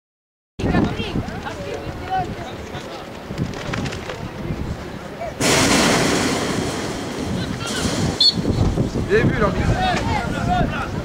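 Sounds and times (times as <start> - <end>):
faint outdoor voices: 0.6 - 11.0
wind buffeting microphone: 0.6 - 11.0.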